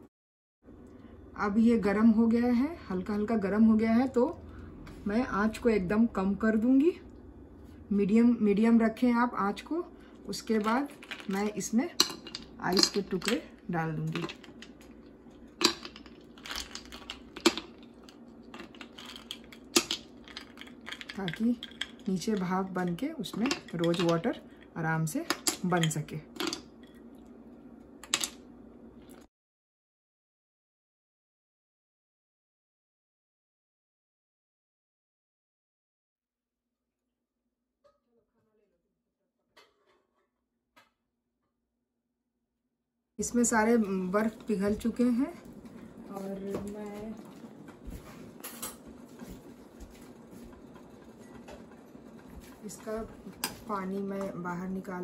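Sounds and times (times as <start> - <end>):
steady low hum: 0.7 - 29.3
ice cubes knocking against bowl: 10.6 - 13.4, 14.0 - 24.3.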